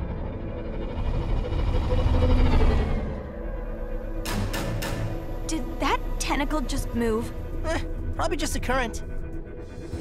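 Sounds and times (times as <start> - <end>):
ominous background music: 0.0 - 10.0.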